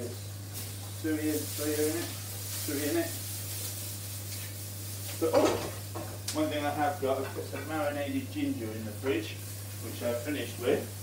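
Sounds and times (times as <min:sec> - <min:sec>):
steady low hum: 0:00.0 - 0:11.0
vegetables sizzling in a pan: 0:00.0 - 0:11.0.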